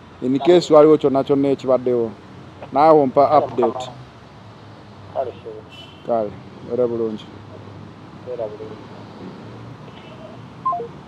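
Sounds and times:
faint brief beep: 0:10.7 - 0:10.9.

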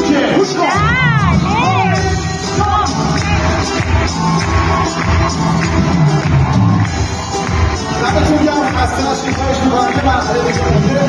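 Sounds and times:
drums: 0:00.0 - 0:11.0
keyboards: 0:00.0 - 0:11.0
pop band playing live: 0:00.0 - 0:11.0.

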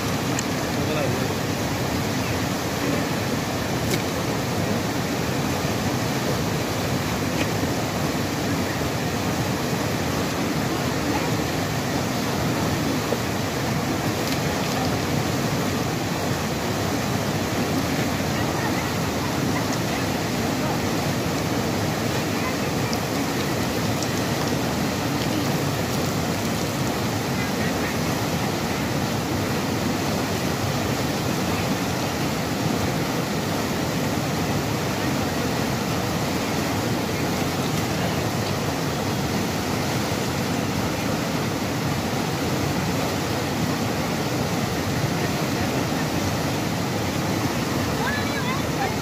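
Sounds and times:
river rapids rushing: 0:00.0 - 0:49.0.

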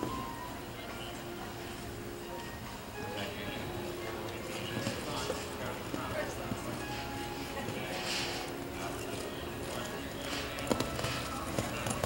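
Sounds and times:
background music: 0:00.0 - 0:12.0
voices: 0:02.9 - 0:12.0
horse hoofbeats on sand: 0:09.7 - 0:12.0.

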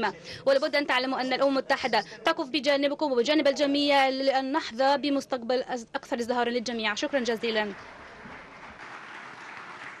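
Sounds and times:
audience applauding: 0:07.4 - 0:10.0.

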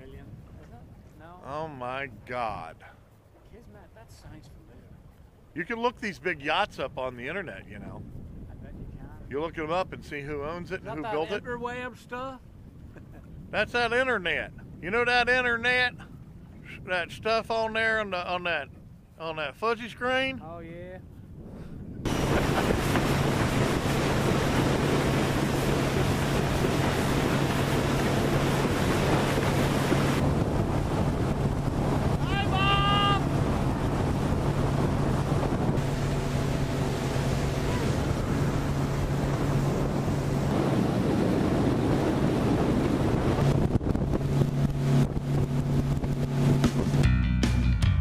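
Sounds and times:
wind on microphone: 0:00.0 - 0:47.1
outboard motor running: 0:22.0 - 0:47.0
water rushing off hull: 0:22.1 - 0:47.0.

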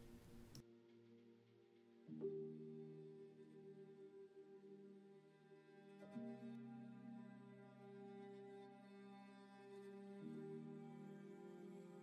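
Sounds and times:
faint music of sustained chords: 0:00.0 - 0:12.0.

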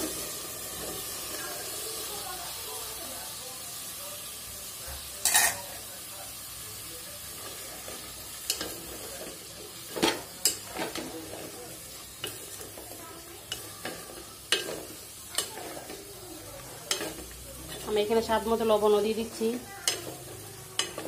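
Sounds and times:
food sizzling: 0:00.0 - 0:21.0.

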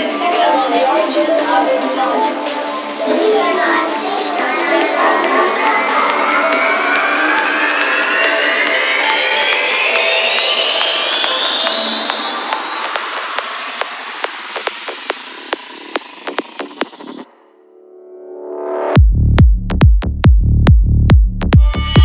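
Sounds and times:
synth riser sweeping upward: 0:02.9 - 0:19.0.

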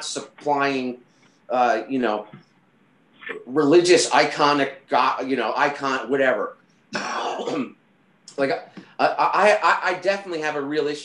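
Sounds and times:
man speaking: 0:00.0 - 0:02.4, 0:03.2 - 0:07.7, 0:08.3 - 0:11.0
man clearing throat: 0:07.0 - 0:07.8.

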